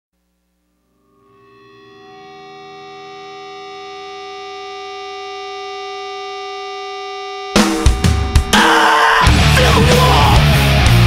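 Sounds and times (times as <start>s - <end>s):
held guitar note: 0.3s - 11.0s.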